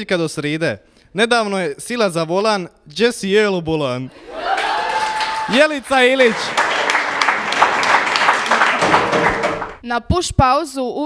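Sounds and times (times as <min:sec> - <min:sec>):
group applauding: 0:04.2 - 0:09.8.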